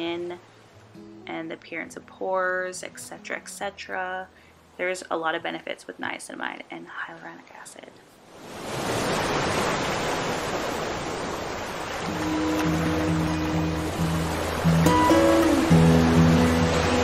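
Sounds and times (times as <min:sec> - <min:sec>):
surf-like noise wash: 0:08.1 - 0:17.0.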